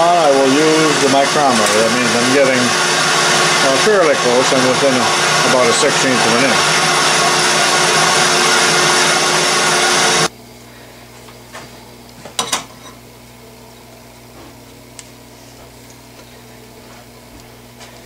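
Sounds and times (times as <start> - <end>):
metal lathe cutting: 0.0 - 10.3.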